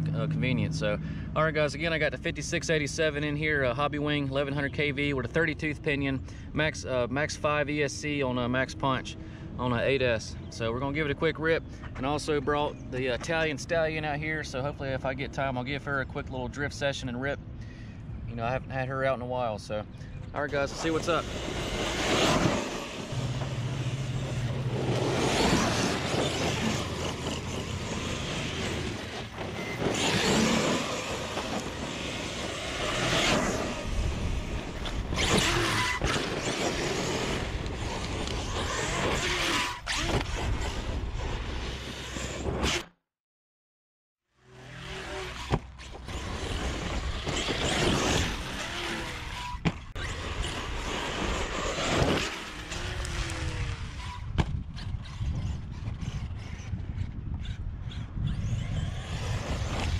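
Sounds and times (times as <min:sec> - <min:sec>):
tyres on loose dirt: 0:19.9 - 0:42.8, 0:44.5 - 0:56.8, 0:58.5 - 0:59.9
rc truck motor accelerating: 0:20.4 - 0:42.9, 0:44.4 - 0:59.9.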